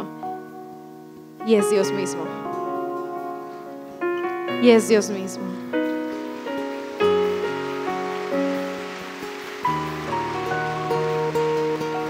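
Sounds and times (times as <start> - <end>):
soft keyboard chords: 0.0 - 12.0.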